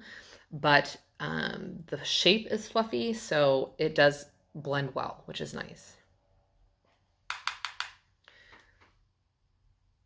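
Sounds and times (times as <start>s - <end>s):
brush tapping on palette: 7.3s - 8.0s.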